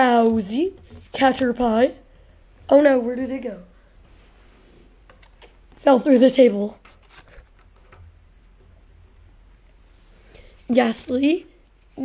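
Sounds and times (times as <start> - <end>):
cards handled on wooden table: 6.8 - 8.1.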